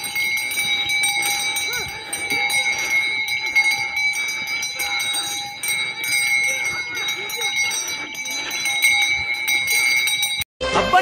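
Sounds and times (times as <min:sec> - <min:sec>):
brass neck bells jingling: 0:00.0 - 0:10.5.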